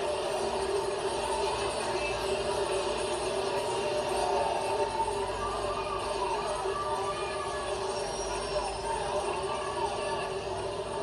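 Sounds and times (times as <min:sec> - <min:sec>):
television broadcast noise: 0:00.0 - 0:11.0
faint voice: 0:03.7 - 0:11.0.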